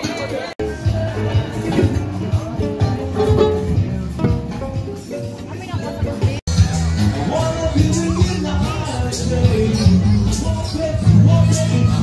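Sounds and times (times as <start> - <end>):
plucked guitar music: 0.0 - 12.0
bass beat: 0.6 - 12.0.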